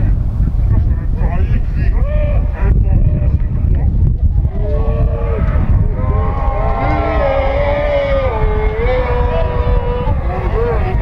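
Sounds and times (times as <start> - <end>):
wind buffeting microphone: 0.0 - 11.0
men shouting: 4.5 - 11.0.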